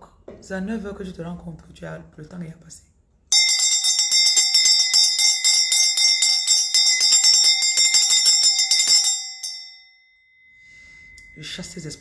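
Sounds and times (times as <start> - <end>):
bell rung rapidly: 3.3 - 12.0.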